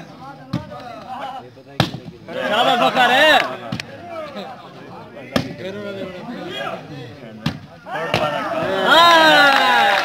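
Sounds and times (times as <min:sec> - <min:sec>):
crowd voices: 0:00.0 - 0:10.0
crowd shouting: 0:02.3 - 0:04.5, 0:07.8 - 0:10.0.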